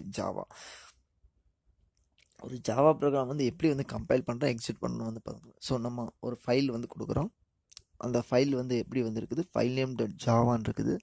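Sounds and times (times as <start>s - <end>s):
man speaking: 0.0s - 0.6s, 2.3s - 11.0s.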